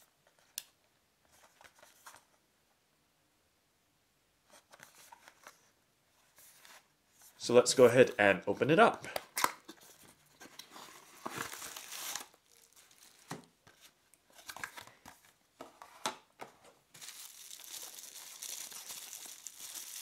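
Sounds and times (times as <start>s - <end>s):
bubble wrap crinkling: 10.6s - 15.0s, 16.9s - 20.0s.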